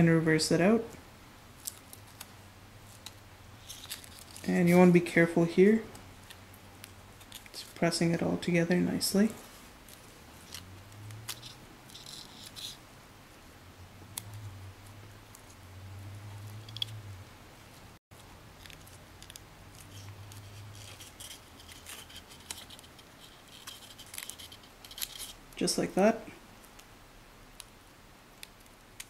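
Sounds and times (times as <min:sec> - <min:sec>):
paper crinkling and rustling: 0:01.6 - 0:04.9, 0:06.2 - 0:07.8, 0:18.1 - 0:25.4.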